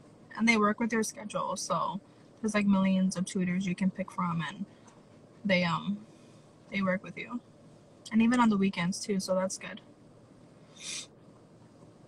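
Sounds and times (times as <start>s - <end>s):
low steady background noise: 0.0s - 12.0s
sniff: 10.7s - 11.1s.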